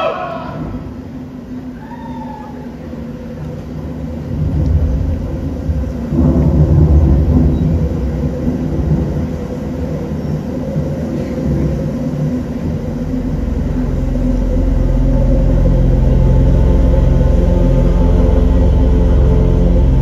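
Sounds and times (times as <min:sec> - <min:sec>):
live band music with drone: 0:13.0 - 0:20.0.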